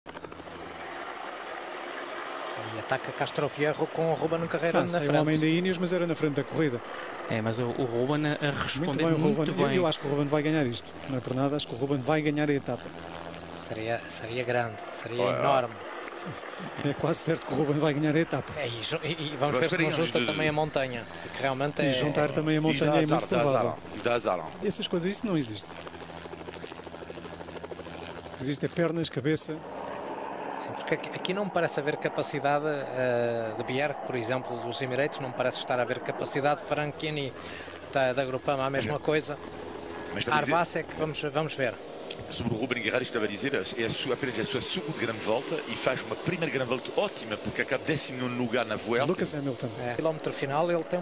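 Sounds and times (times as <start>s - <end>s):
helicopter engine hum: 0.0s - 51.0s
rotor blades pulsing: 0.0s - 51.0s
motor vehicles droning: 0.1s - 51.0s.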